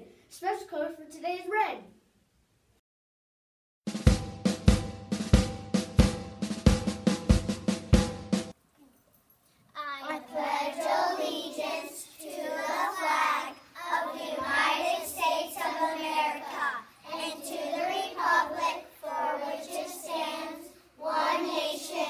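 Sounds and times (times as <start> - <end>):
children reciting in unison: 9.8 - 22.0.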